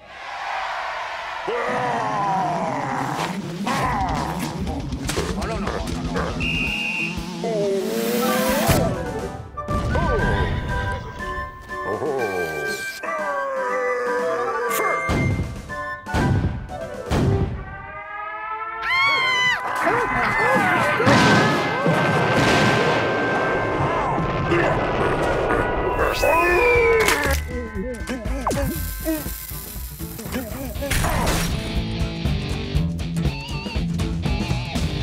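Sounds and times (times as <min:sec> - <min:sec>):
rising-and-falling tone: 0:06.6 - 0:08.9.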